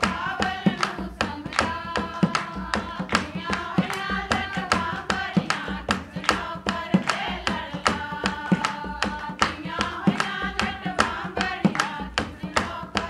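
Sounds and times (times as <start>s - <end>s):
hand clapping: 0.0s - 13.0s
women singing in unison: 0.0s - 13.0s.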